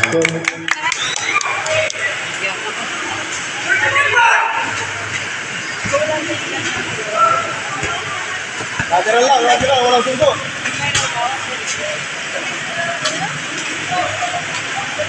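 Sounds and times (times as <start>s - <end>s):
distant voices: 0.0s - 15.0s
spectators chattering and calling out: 0.0s - 15.0s.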